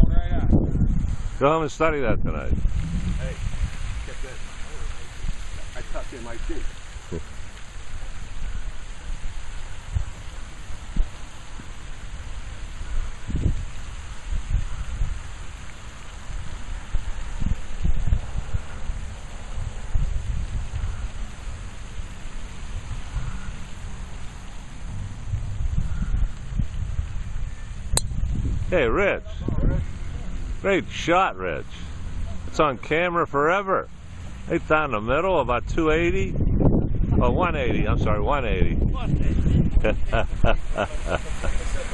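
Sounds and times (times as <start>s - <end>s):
wind buffeting microphone: 0.0s - 41.9s
steady hiss: 1.0s - 36.2s, 38.5s - 41.9s.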